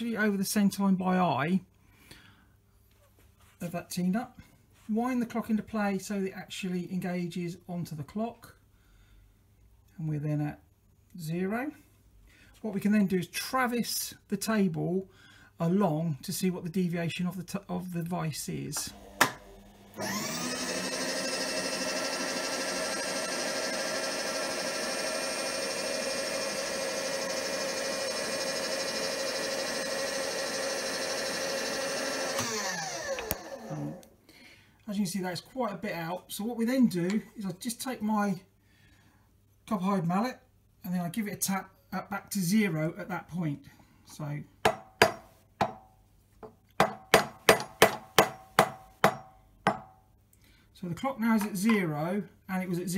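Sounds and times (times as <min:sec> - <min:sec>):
power feed motor whining: 0:18.8 - 0:34.1.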